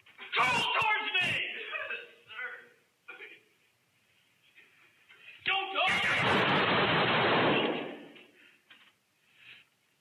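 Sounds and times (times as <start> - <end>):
rifle shots in rapid string: 5.9 - 8.1.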